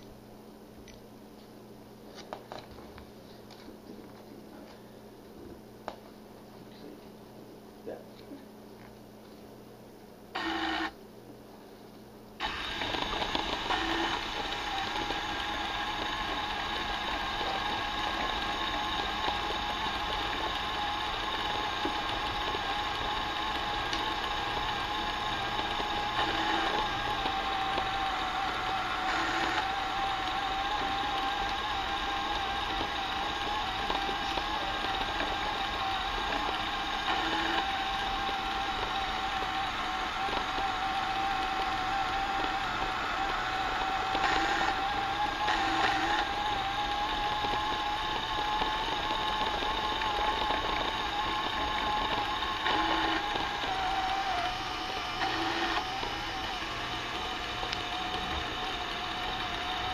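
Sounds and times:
small electric motor whining: 0:10.3 - 0:11.0, 0:12.4 - 0:59.9.

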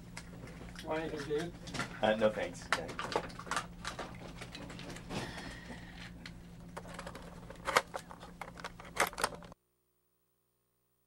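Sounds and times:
steady low hum: 0:00.0 - 0:10.5
handling clicks and rustling: 0:06.0 - 0:09.6.

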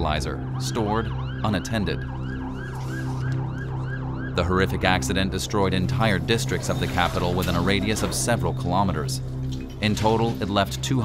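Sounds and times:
electronic siren warbling: 0:00.0 - 0:09.4
steady low drone: 0:00.0 - 0:11.0.

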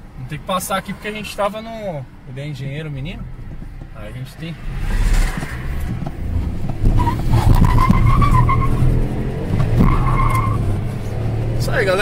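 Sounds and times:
car tires squealing: 0:04.6 - 0:12.0.

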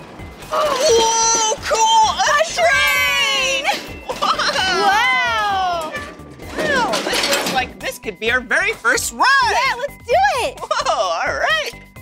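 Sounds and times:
background music: 0:00.0 - 0:12.0
person exclaiming wow: 0:00.5 - 0:03.7, 0:04.5 - 0:06.0.

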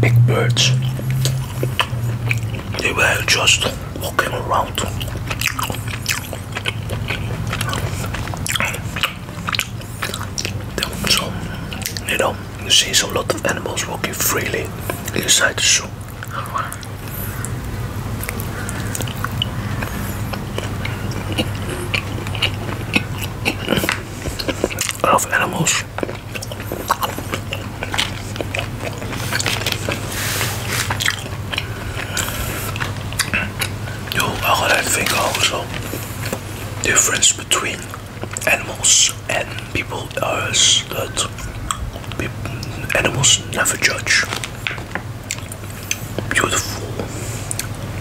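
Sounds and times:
chewing jerky: 0:00.0 - 0:48.0
low hum: 0:00.0 - 0:48.0.

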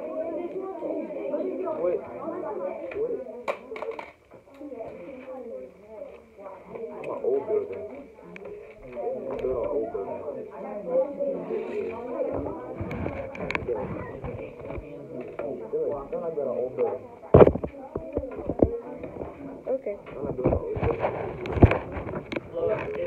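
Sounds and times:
children's voices chattering: 0:00.0 - 0:23.0
phone rubbing against clothing: 0:20.3 - 0:22.5.

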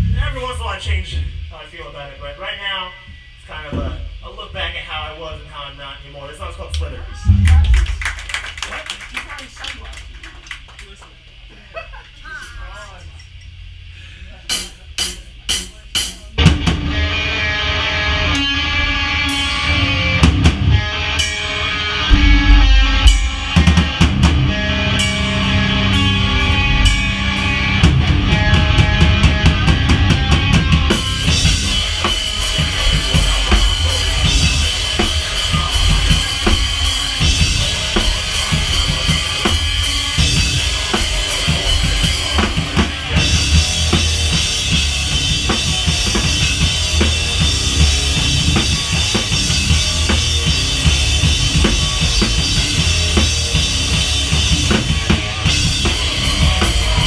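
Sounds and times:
cymbal wash: 0:13.7 - 0:57.0
live rock band playing: 0:16.4 - 0:57.0.

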